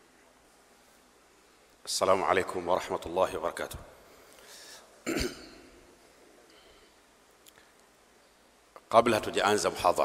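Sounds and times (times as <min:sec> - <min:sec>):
man clearing his throat: 0:05.0 - 0:05.8.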